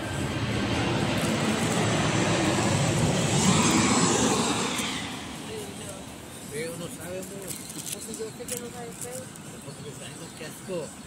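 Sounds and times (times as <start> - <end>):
passing vehicle rushing: 0.0 - 6.8.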